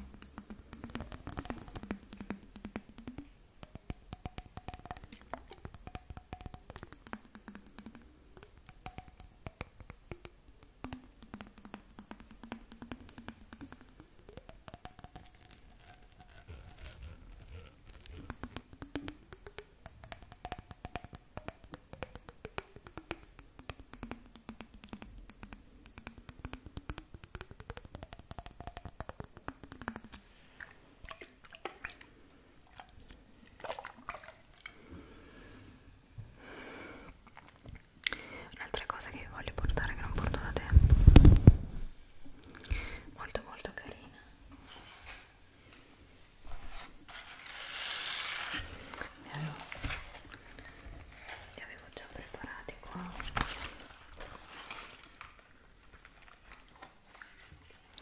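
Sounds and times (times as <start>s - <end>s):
fingernails tapping on jar: 0.0s - 30.2s
hands rubbing microphone windscreen: 15.8s - 18.3s, 40.3s - 42.0s.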